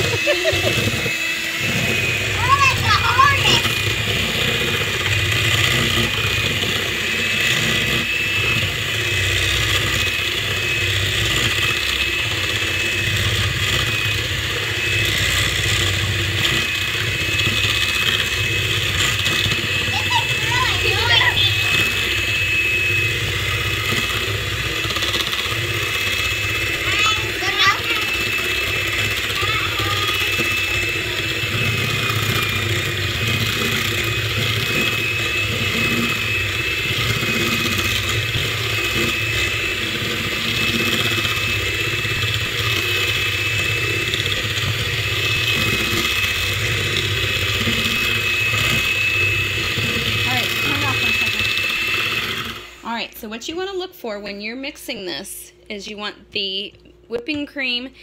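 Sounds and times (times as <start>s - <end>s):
electric hand mixer whining: 0.0s - 55.5s.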